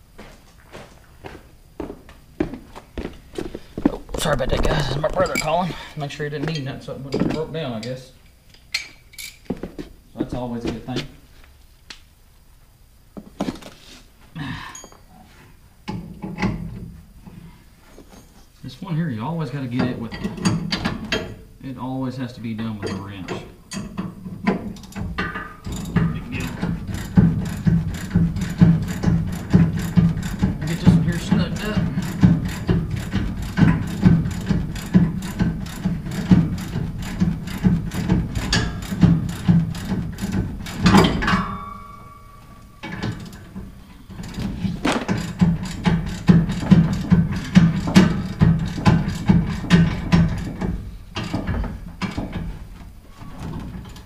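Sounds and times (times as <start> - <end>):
ratchet wrench clicking: 25.6 - 41.0.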